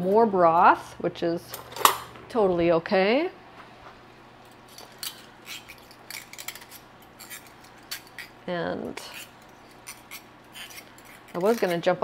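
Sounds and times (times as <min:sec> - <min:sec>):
wire whisk scraping metal skillet: 0:09.0 - 0:12.0.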